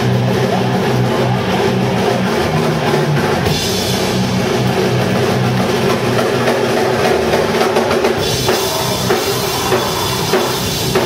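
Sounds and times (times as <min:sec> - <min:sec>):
heavy distorted guitars: 0:00.0 - 0:11.0
fast drum hits: 0:03.4 - 0:11.0.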